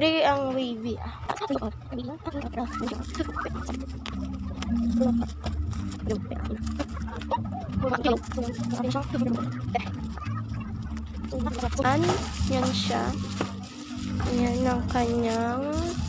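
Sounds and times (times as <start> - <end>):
background voices: 1.0 - 16.0
bubble wrap crinkling: 2.3 - 16.0.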